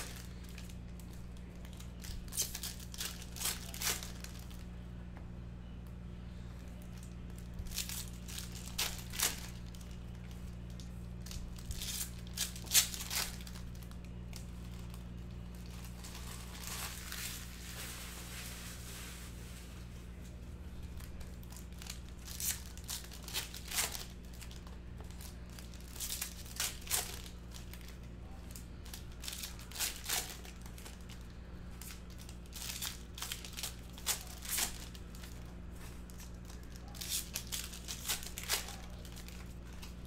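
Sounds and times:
foil wrappers crinkling and tearing: 0.0s - 4.8s, 6.3s - 40.0s
steady low hum: 0.0s - 40.0s.

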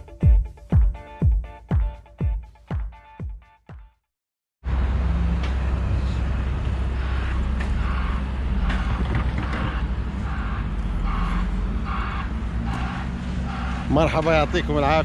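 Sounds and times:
low rumble of traffic: 4.6s - 15.0s.

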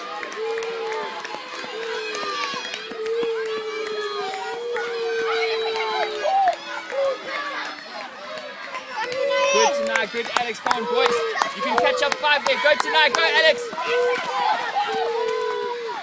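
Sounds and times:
spectators shouting encouragement: 0.0s - 16.0s.

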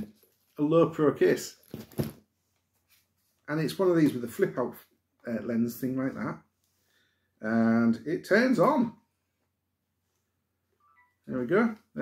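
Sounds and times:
faint electronic beep: 10.8s - 11.5s.

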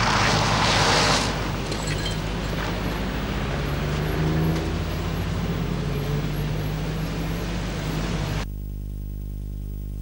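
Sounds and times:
engine humming: 0.0s - 8.5s
road traffic noise: 0.0s - 8.5s.

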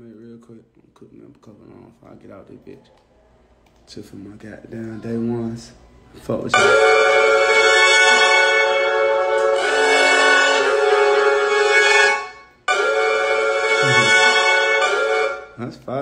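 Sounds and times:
layered instrument tones loop: 6.5s - 15.6s.

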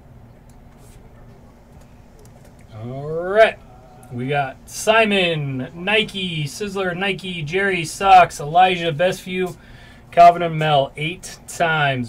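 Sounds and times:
room hum: 0.0s - 12.0s.

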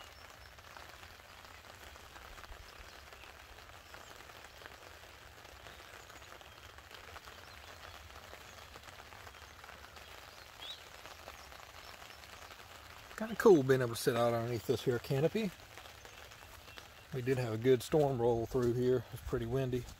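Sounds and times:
light rain patter: 0.0s - 19.9s.

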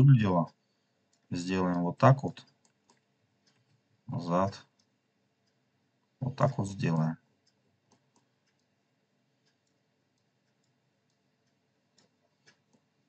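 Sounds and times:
computer mouse clicking: 1.0s - 3.9s, 4.6s - 5.6s, 7.4s - 13.0s.

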